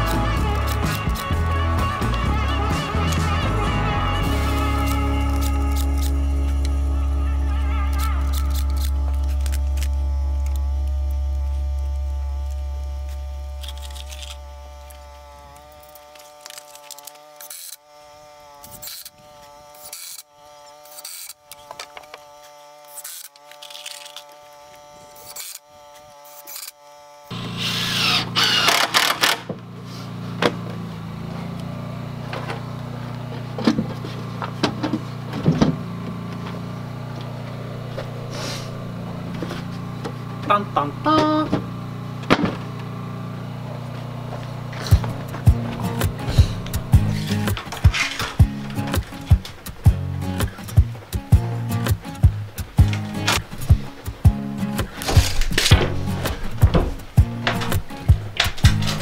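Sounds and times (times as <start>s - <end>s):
cordless drill drilling wood: 0.0s - 3.4s, 4.2s - 49.5s
background music of sustained chords: 0.0s - 15.2s, 31.3s - 59.0s
steady low hum: 0.0s - 19.8s, 27.2s - 59.0s
knocks and clicks: 44.8s - 59.0s.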